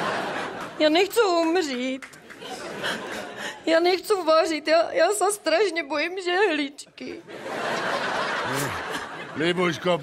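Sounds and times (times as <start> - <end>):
audience laughing: 0.0 - 1.2, 2.3 - 3.6, 7.2 - 10.0
man chuckling: 8.4 - 9.0.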